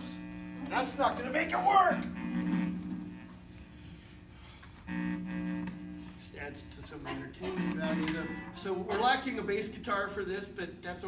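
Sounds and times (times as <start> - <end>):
electric guitar chord ringing: 7.1 - 8.9.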